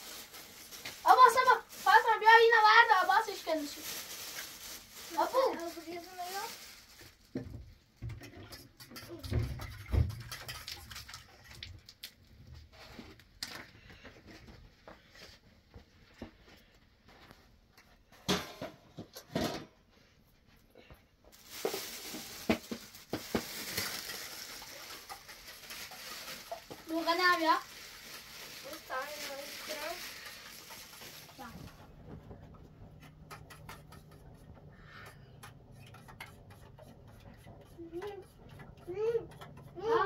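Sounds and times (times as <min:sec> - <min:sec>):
plastic bag rustling: 0:00.0 - 0:07.7, 0:21.3 - 0:33.4
small child's voice: 0:01.0 - 0:03.8, 0:05.0 - 0:06.7, 0:08.9 - 0:09.6, 0:26.7 - 0:27.7, 0:28.6 - 0:30.2, 0:31.3 - 0:31.8, 0:37.7 - 0:40.0.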